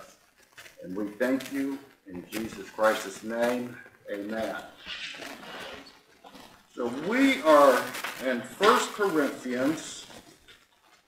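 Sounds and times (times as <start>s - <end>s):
book pages rustling and turning: 0.0s - 11.0s
man's voice: 0.8s - 4.8s, 6.8s - 10.2s.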